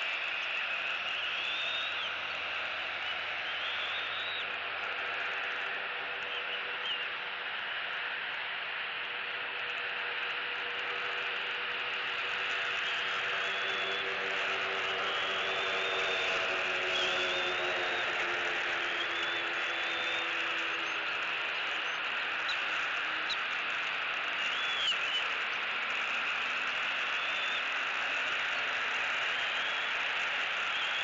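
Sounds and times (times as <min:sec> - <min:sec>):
distant engine drone: 0:13.2 - 0:22.0.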